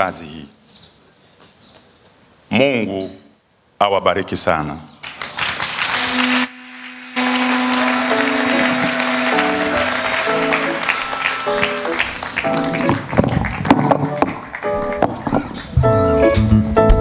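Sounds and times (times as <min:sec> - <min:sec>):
audience applause: 0:05.0 - 0:15.7
instrumental music: 0:05.9 - 0:17.0.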